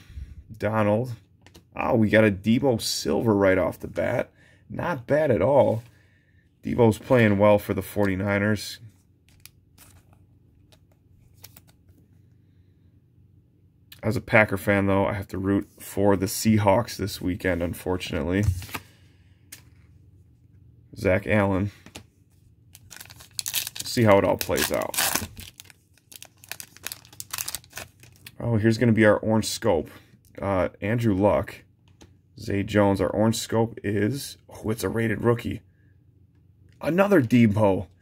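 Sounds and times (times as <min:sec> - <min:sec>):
low room hum: 0:00.0 - 0:38.0
trading cards being handled: 0:06.7 - 0:12.1, 0:18.3 - 0:20.0, 0:21.7 - 0:28.4
foil wrapper tearing and crinkling: 0:22.8 - 0:28.3.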